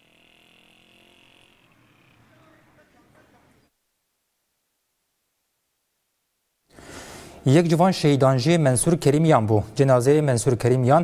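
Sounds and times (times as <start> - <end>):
faint high-pitched buzz: 0.0 - 6.6.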